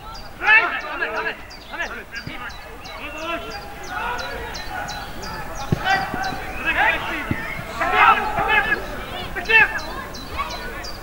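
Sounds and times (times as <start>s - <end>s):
players calling out: 0.0s - 11.0s
ball being kicked: 4.4s - 9.1s.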